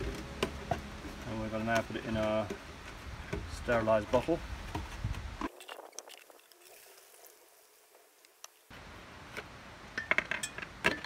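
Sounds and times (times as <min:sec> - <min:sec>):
clinks and knocks of containers: 0:10.0 - 0:11.0.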